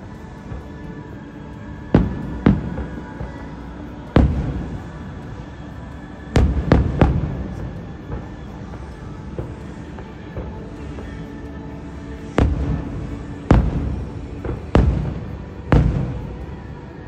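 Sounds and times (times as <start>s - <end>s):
music playing: 0.0s - 17.0s
fireworks bursting: 1.7s - 17.0s.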